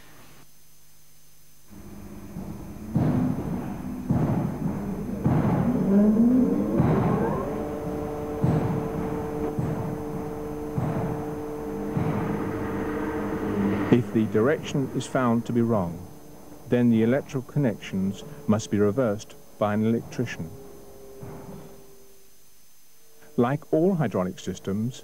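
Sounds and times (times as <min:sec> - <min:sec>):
electric pump motor whine: 0:01.7 - 0:24.0.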